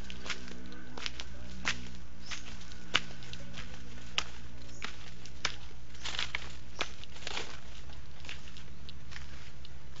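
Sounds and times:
footsteps on stone path: 0:00.0 - 0:10.0
steady low hum: 0:00.0 - 0:10.0.

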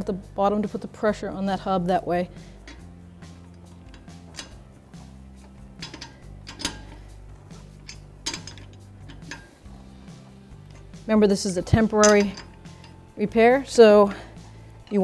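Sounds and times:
quiet background music: 0:00.0 - 0:15.0
lug wrench clicking on nuts: 0:02.4 - 0:09.8, 0:10.7 - 0:13.1.

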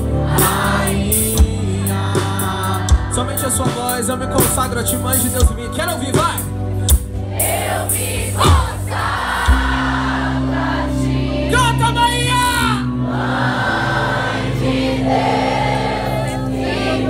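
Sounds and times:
crowd singing along: 0:00.0 - 0:04.1, 0:06.8 - 0:12.0, 0:12.8 - 0:17.0
worship band playing: 0:00.0 - 0:17.0.

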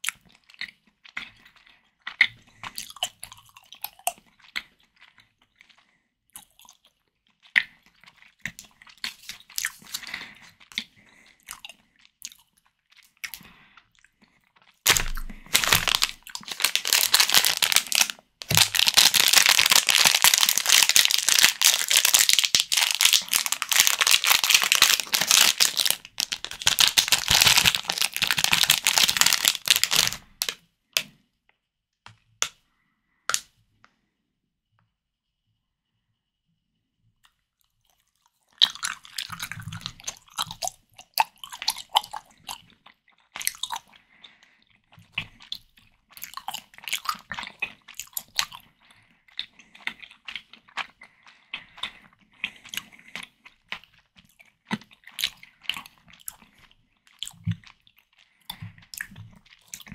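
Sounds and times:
plastic wrapper crinkling: 0:14.9 - 0:30.6.

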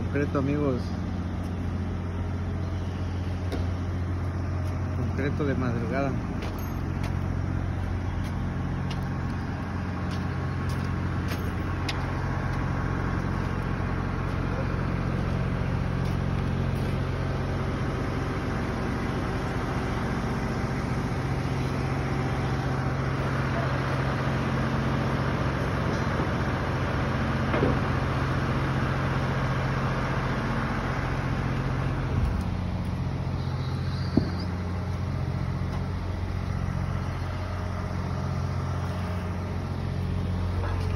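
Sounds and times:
diesel engine running: 0:00.0 - 0:40.9.

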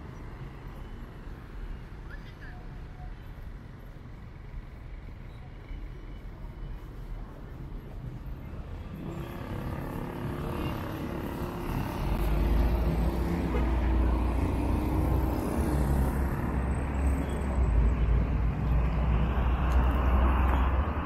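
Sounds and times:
cars driving past: 0:07.9 - 0:21.0.

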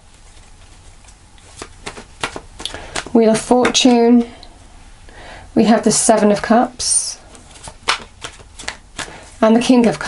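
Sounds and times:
cards being shuffled: 0:00.1 - 0:04.0, 0:07.3 - 0:10.0
card snaps and taps: 0:01.6 - 0:03.8, 0:07.6 - 0:09.2.

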